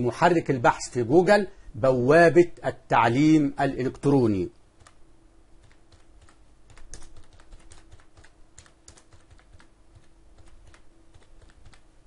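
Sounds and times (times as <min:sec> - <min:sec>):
keyboard key clicks: 0:05.6 - 0:11.9.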